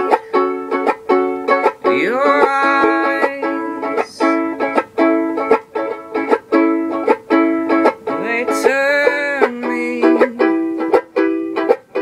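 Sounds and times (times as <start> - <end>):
banjo ukulele picking arpeggios: 0.0 - 12.0.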